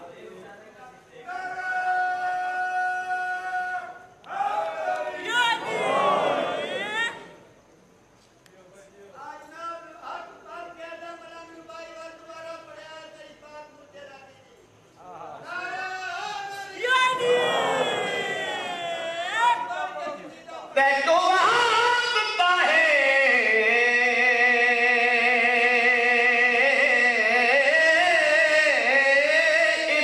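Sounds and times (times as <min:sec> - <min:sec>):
person chanting into a microphone: 0:20.8 - 0:30.0.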